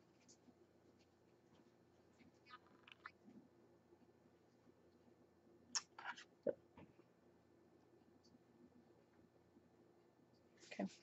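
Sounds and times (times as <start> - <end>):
faint ticks and rustles: 0.0 - 3.4.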